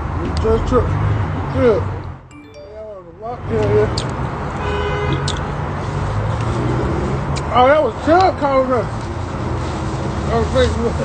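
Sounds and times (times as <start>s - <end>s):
road traffic rumble: 0.0s - 2.3s, 3.0s - 11.0s.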